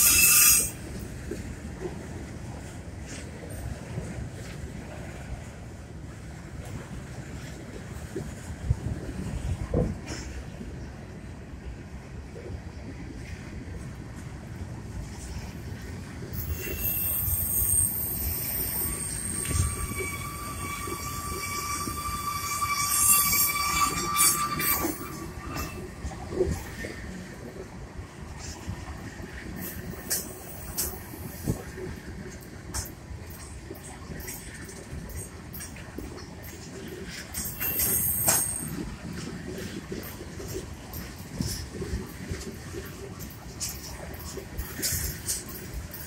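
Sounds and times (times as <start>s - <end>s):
train wheels squealing: 0.0s - 1.0s, 16.2s - 27.0s, 29.6s - 31.6s, 32.7s - 46.0s
train wheels rumbling: 0.0s - 46.0s.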